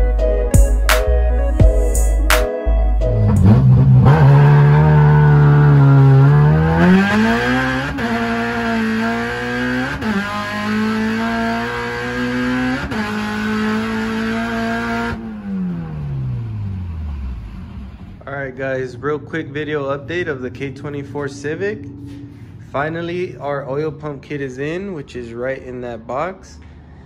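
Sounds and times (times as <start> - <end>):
car engine accelerating: 3.0 - 25.1.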